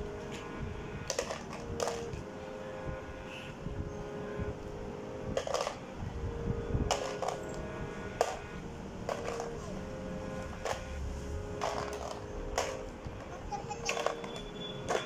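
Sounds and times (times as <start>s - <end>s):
plastic toy blocks clacking: 1.0s - 2.2s, 5.4s - 5.8s, 6.9s - 7.6s, 8.2s - 8.4s, 9.0s - 9.7s, 10.6s - 10.8s, 11.6s - 15.0s.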